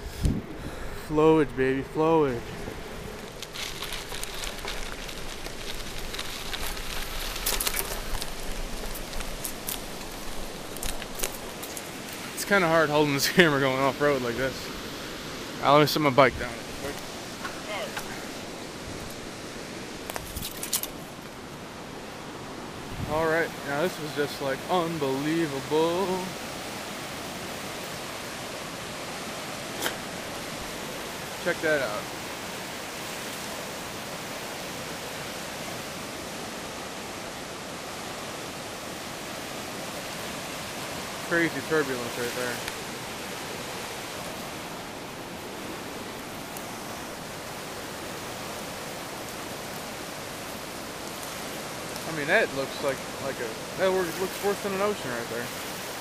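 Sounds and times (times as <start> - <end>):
river rushing through rapids: 1.1 - 56.0
bicycle tyres crunching on gravel: 2.2 - 15.0, 16.4 - 21.3, 40.4 - 56.0.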